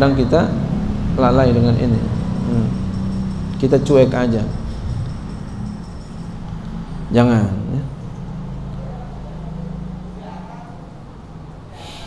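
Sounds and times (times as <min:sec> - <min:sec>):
steady low hum: 0:11.5 - 0:12.0.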